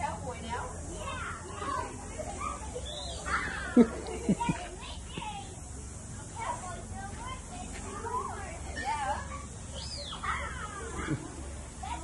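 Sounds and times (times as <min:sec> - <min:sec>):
children chattering and calling out: 0:00.0 - 0:12.0.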